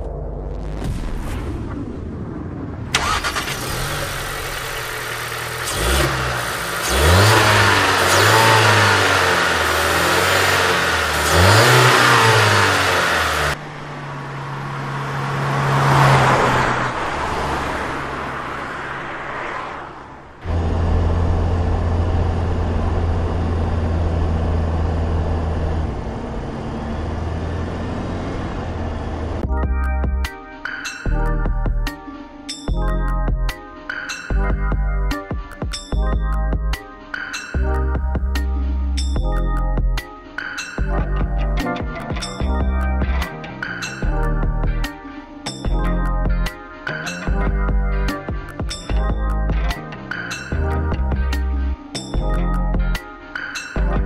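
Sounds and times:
car engine revving: 2.9 - 29.4.

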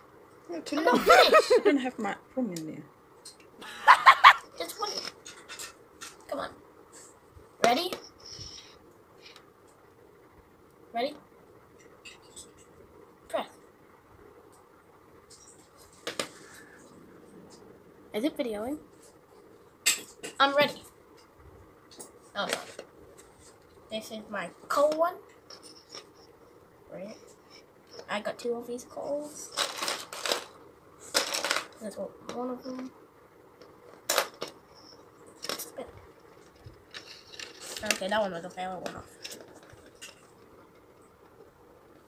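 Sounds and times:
spinning top on plastic plate: 29.4 - 32.9.

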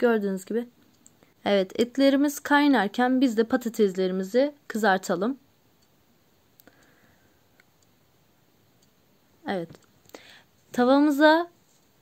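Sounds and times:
faint click: 6.6 - 7.0.

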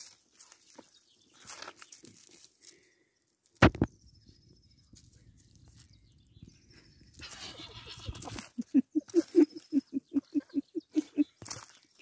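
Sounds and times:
man laughing: 7.5 - 11.4.

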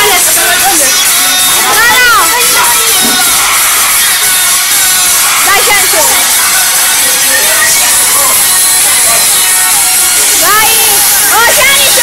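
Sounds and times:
boys' voices: 0.0 - 12.0.

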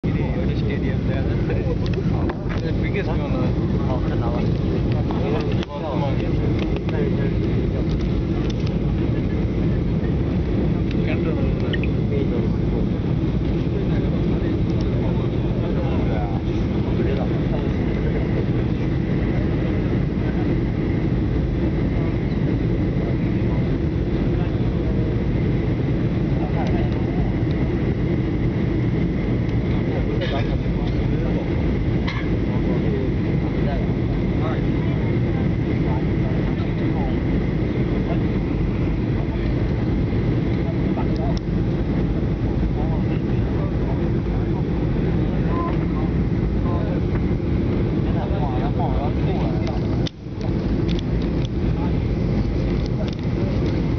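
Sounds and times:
faint passenger voices: 0.0 - 53.9
jet engines and rushing air: 0.0 - 53.9.

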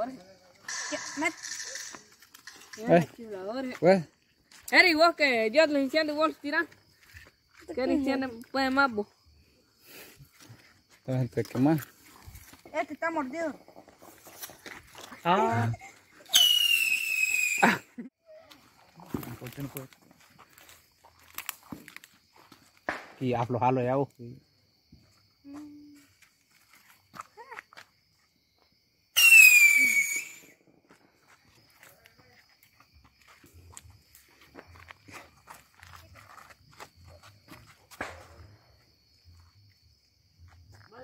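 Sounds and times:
whistling firework: 16.2 - 17.9, 29.1 - 30.7
faint ticks and crackles: 18.5 - 22.9.

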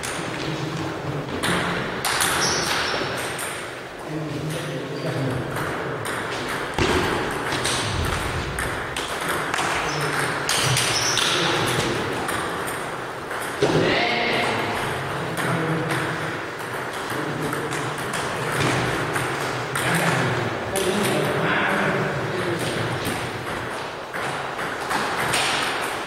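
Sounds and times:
table tennis balls clicking: 0.0 - 13.7, 14.6 - 21.5, 22.3 - 26.0
loud knock: 6.8 - 9.9.

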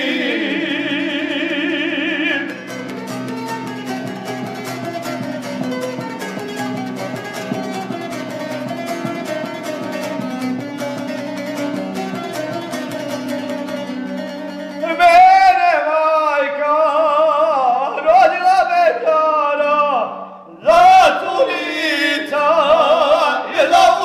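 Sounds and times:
plucked lute with drone: 0.0 - 15.6.

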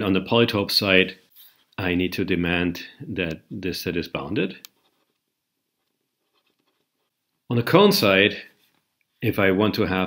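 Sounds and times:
stylus scratching on tablet: 4.7 - 7.2.

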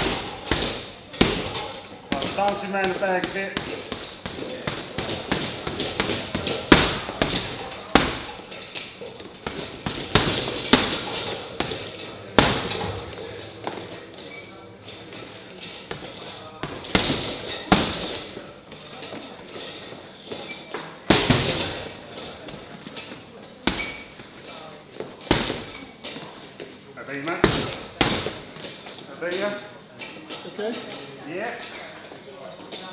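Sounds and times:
punches landing on boxing pads: 0.0 - 8.5, 9.3 - 13.2, 15.9 - 18.4, 21.1 - 22.7, 23.6 - 24.2, 25.2 - 25.9, 27.4 - 28.6.

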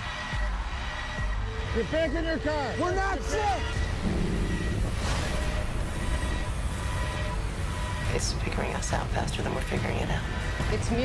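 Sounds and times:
low rumbling drone: 3.8 - 10.7.

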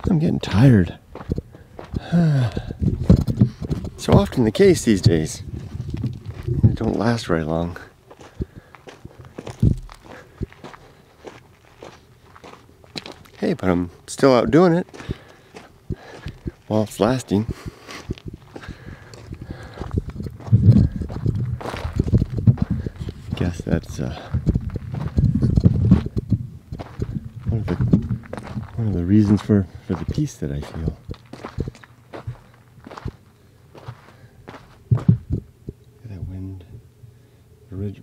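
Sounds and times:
footsteps on gravel: 0.5 - 35.4
low burst: 17.3 - 30.2
loud thump: 25.5 - 28.8.

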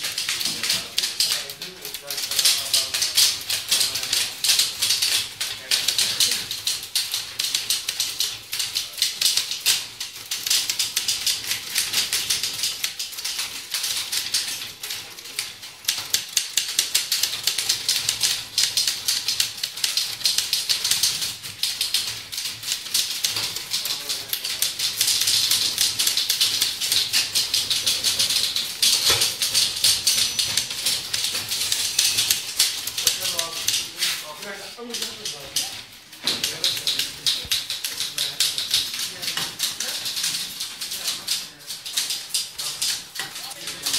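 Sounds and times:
typewriters clattering: 0.0 - 43.9.

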